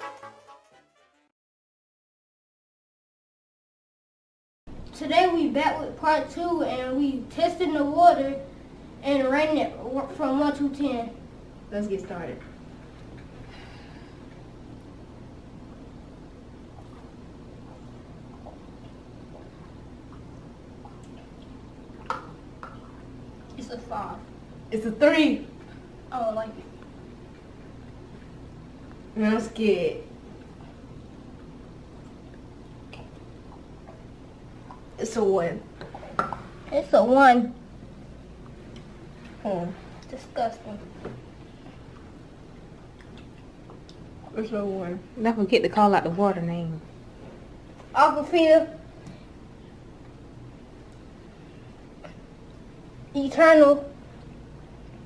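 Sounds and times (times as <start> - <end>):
steady low hum: 4.7 - 55.0.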